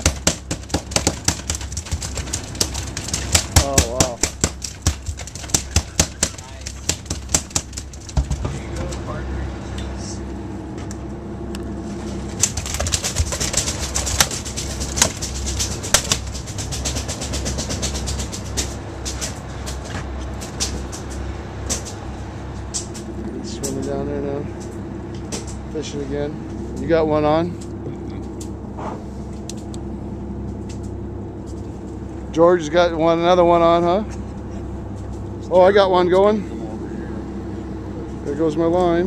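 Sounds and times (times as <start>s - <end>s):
fish tail knocking on deck: 0.0s - 8.6s.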